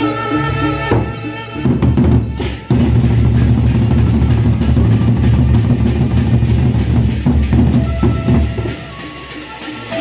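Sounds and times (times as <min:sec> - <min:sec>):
barrel drums beaten fast: 0:01.7 - 0:10.0.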